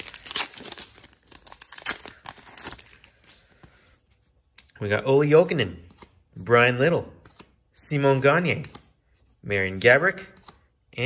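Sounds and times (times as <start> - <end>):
card pack wrapper tearing: 0.0 - 3.3.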